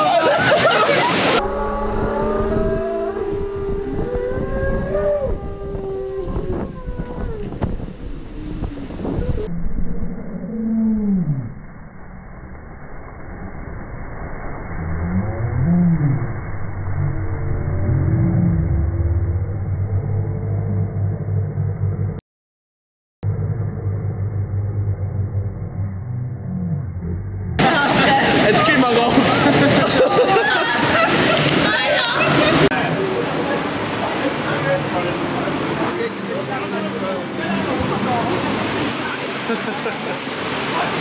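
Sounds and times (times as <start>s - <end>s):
slowed-down screams and shouts: 0.0s - 7.4s, 8.4s - 22.2s, 23.2s - 28.3s
ride and water rushing: 0.0s - 19.8s, 27.6s - 41.0s.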